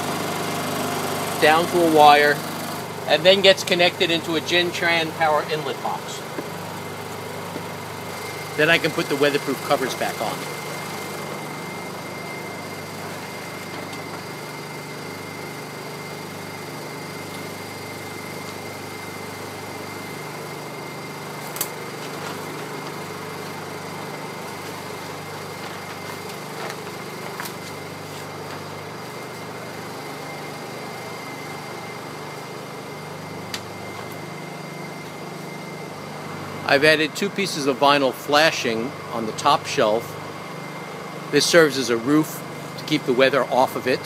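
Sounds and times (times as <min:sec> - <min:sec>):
generators humming: 0:00.0 - 0:44.0.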